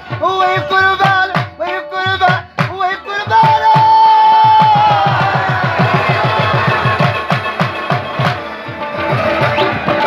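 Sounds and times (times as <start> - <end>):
hand drum beating fast: 0.0 - 10.0
harmonium: 0.0 - 10.0
rabab: 0.0 - 10.0.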